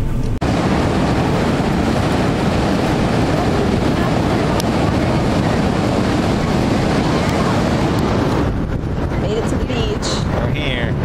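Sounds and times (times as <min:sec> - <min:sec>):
car cabin road hum: 0:00.0 - 0:11.0
wind on microphone: 0:00.0 - 0:11.0
ocean surf breaking: 0:00.4 - 0:11.0.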